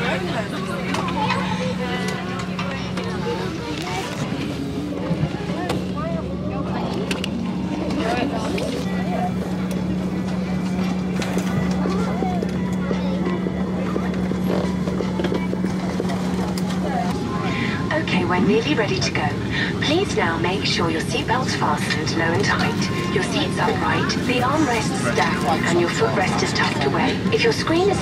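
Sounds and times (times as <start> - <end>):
faint passenger chatter: 0.0 - 28.0
low hum: 0.0 - 28.0
ventilation drone: 0.0 - 28.0.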